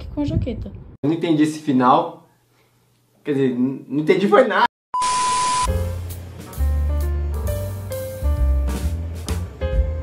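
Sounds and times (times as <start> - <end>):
steady high beep: 5.0 - 5.7
background music with deep bass: 5.7 - 10.0.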